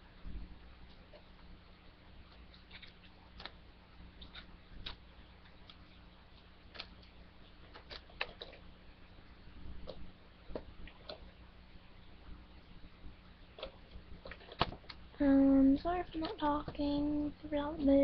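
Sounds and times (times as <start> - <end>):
low steady hum: 0.0 - 18.0.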